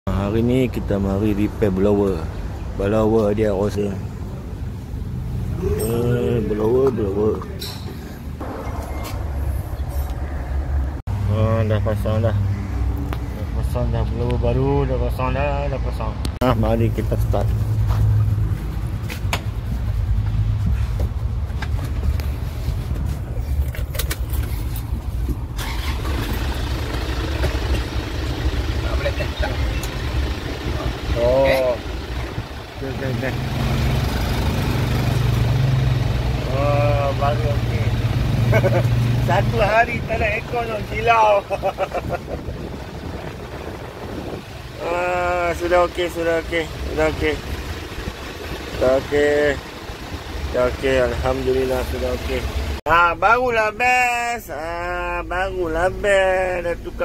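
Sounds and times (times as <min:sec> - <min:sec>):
vehicle engine rumbling: 0:00.1 - 0:57.0.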